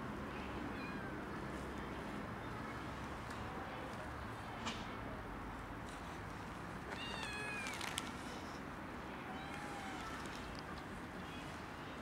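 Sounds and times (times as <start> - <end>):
cat meowing: 6.9 - 7.8, 9.3 - 10.4.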